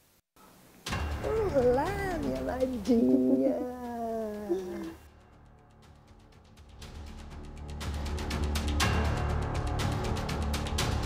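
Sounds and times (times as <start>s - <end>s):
woman's drawn-out wordless voice: 1.2s - 5.0s.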